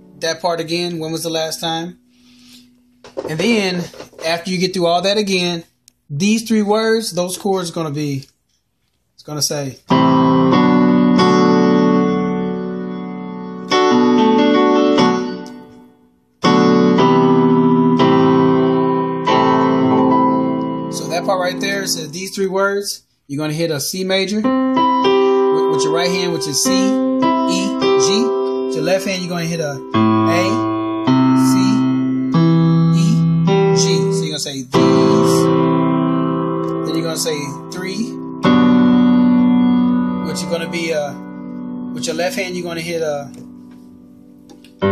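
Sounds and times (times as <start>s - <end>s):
digital piano chords: 0.0s - 8.2s, 9.5s - 44.9s.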